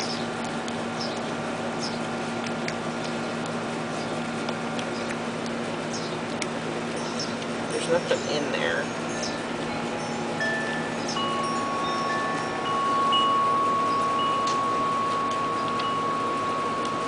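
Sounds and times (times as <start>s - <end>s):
wind chimes ringing: 8.1s - 17.0s.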